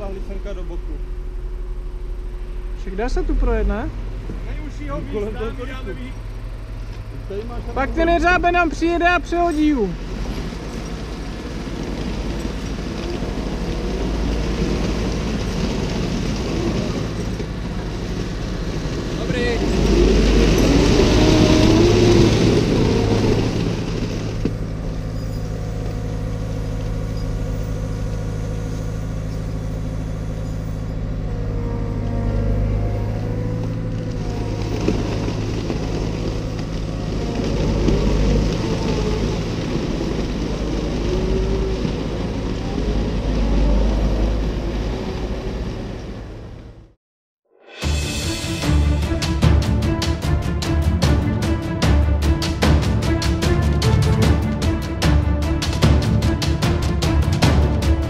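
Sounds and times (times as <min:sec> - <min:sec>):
excavator diesel engine running: 0:00.0 - 0:47.0, 0:48.0 - 0:58.0.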